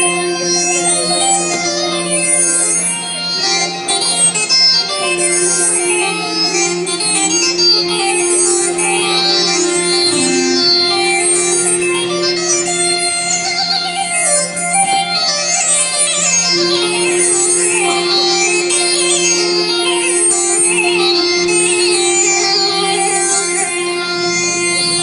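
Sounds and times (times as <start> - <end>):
low drone: 0.0 - 25.0
orchestra playing: 9.3 - 13.5.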